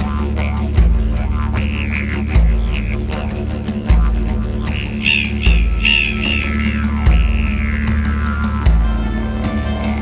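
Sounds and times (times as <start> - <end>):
didgeridoo drone: 0.0 - 10.0
voice-like overtone calls: 1.1 - 10.0.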